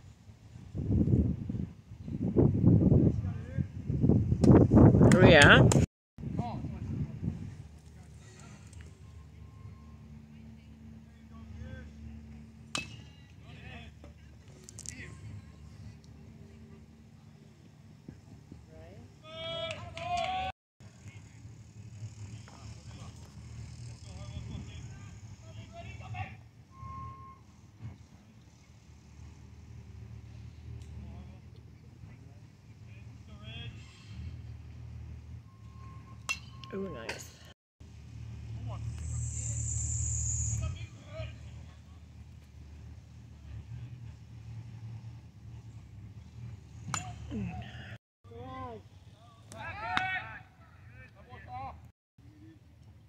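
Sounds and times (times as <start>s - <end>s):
low outdoor rumble: 0.0s - 48.0s
faint steady tone: 8.0s - 13.5s
bat hitting baseball crack: 12.7s - 13.2s
distant shouts: 19.2s - 21.2s, 47.0s - 51.8s.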